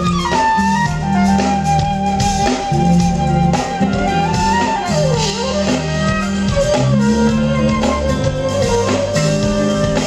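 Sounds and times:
gliding lead melody: 0.0 - 10.0
smooth jazz band playing: 0.0 - 10.0.

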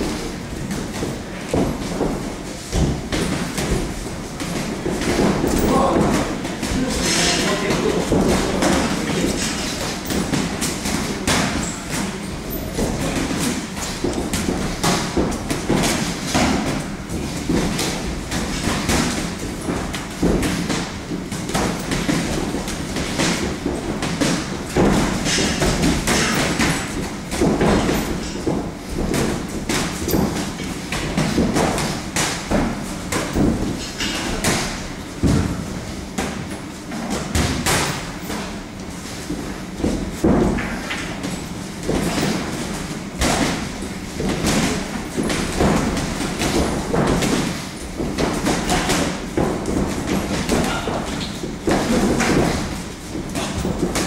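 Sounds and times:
boxing gloves punching: 0.0 - 54.0.

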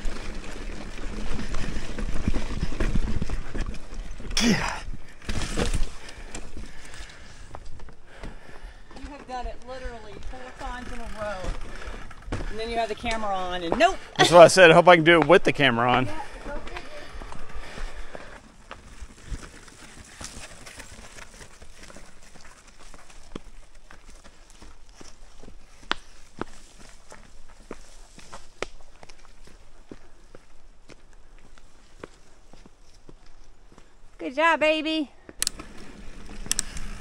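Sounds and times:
bike tyres rumbling on dirt: 0.0 - 14.1, 15.8 - 30.3, 35.5 - 37.0.

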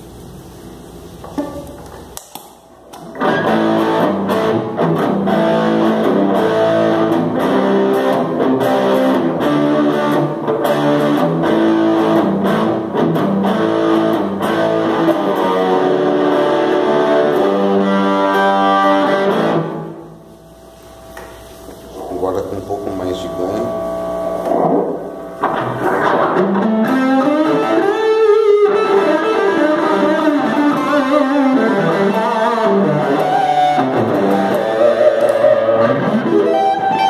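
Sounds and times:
overdriven electric guitar: 1.2 - 37.0.

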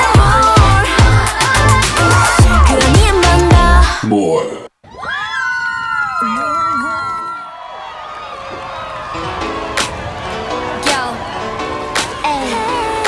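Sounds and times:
pop dance music: 0.0 - 4.4, 10.8 - 11.2, 11.9 - 13.0
young people cheering and whooping: 1.2 - 2.8, 4.8 - 13.0.

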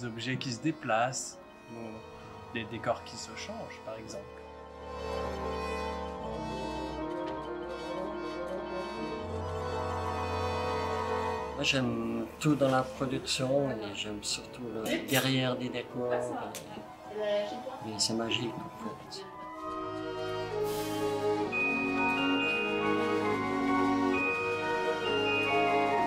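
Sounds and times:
orchestral strings: 0.0 - 26.0
high held note: 19.4 - 26.0.

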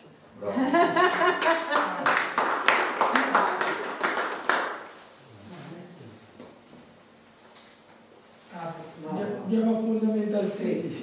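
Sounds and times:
group applauding: 1.1 - 5.0.

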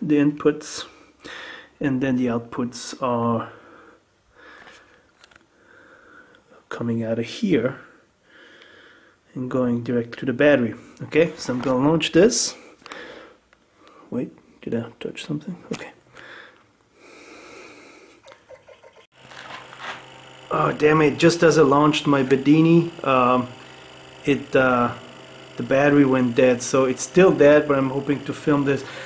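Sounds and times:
faint breathing through nose: 0.9 - 1.8, 3.5 - 6.6, 8.0 - 9.3, 12.5 - 14.1, 16.1 - 18.2.

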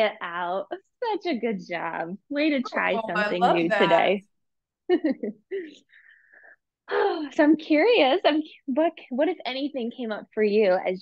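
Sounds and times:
woman laughing: 4.9 - 5.8.

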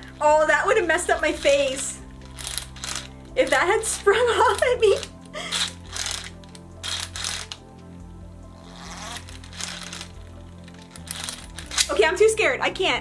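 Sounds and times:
toy launcher whirring and clattering: 1.2 - 7.6, 8.6 - 12.0.

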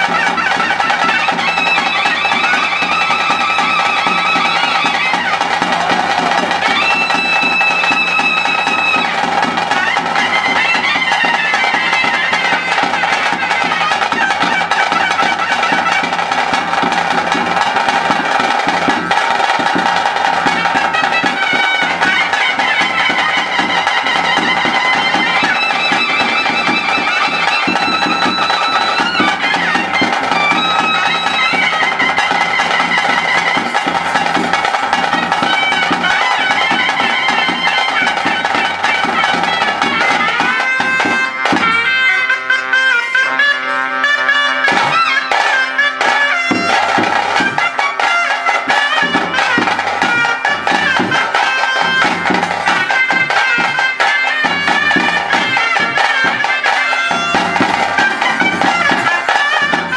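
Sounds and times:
double-reed pipe melody: 0.0 - 59.9
drums beating: 0.0 - 59.9.

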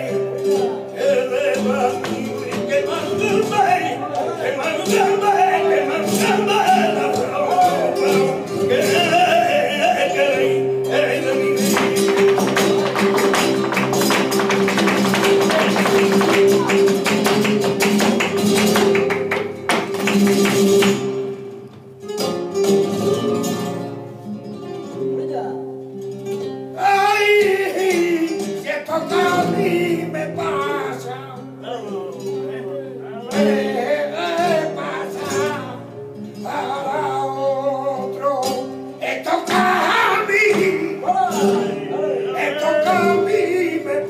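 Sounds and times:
person singing: 0.0 - 12.5, 26.8 - 32.2, 33.2 - 44.0
flamenco guitars: 0.0 - 44.0.

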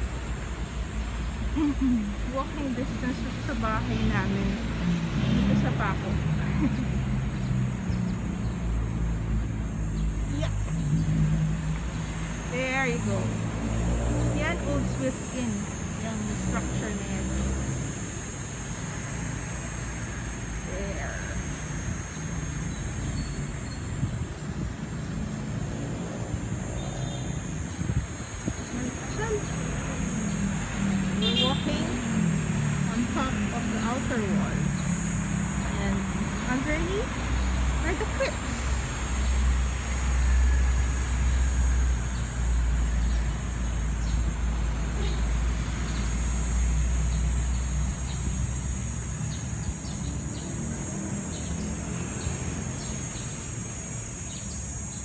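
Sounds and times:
high insect drone: 0.0 - 55.0
road traffic rumbling: 0.0 - 55.0.

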